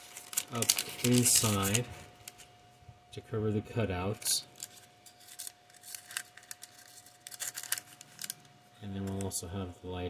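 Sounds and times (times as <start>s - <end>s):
parchment paper crinkling: 0.0s - 2.5s, 4.1s - 8.4s.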